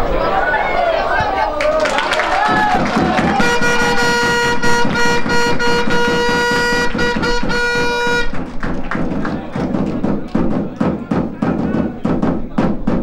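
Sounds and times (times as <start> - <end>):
rhythmic beating: 2.1 - 13.0
horn long steady note: 2.7 - 8.7.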